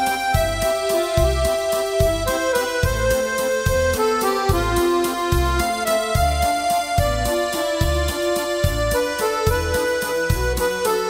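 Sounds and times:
accordion playing slow melody: 0.0s - 11.0s
bass line: 0.0s - 11.0s.

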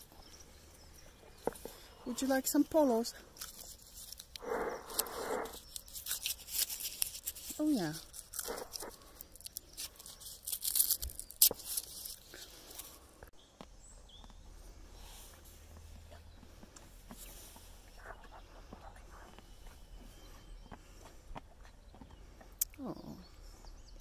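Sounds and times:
horse crunching mints: 0.1s - 13.0s.

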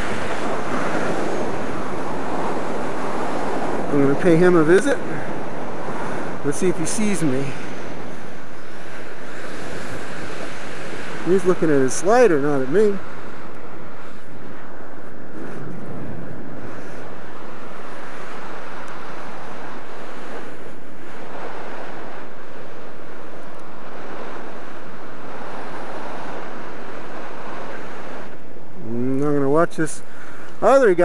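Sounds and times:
wind rushing over microphone: 0.0s - 31.0s.

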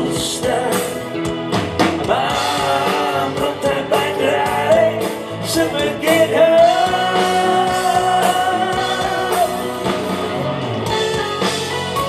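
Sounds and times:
electric guitar: 0.0s - 12.0s
keyboards: 0.0s - 12.0s.

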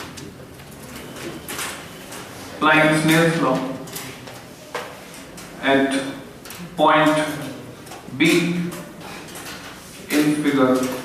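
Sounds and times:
person speaking: 2.4s - 11.0s.

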